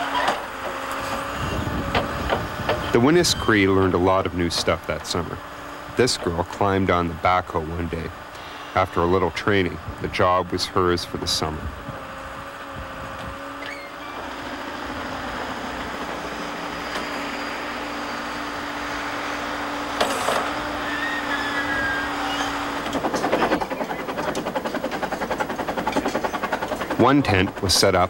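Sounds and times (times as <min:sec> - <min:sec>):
backhoe engine running: 0:00.0 - 0:28.0
fast even pulsing: 0:01.3 - 0:28.0
machine clank: 0:22.3 - 0:27.8.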